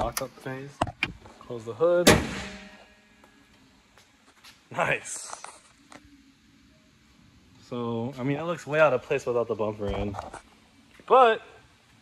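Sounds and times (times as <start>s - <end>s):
car hood slamming: 2.0s - 2.7s.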